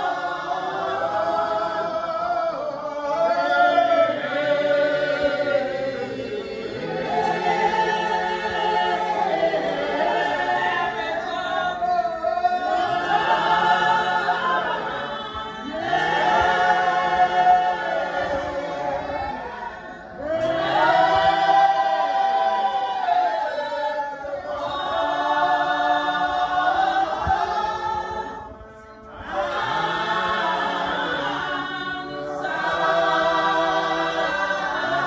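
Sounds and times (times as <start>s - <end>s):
congregation singing a hymn: 0.0s - 35.0s.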